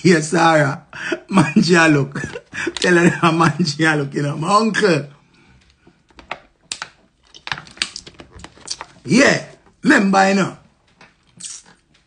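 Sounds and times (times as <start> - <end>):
plastic water bottle crackling: 6.0 - 9.8.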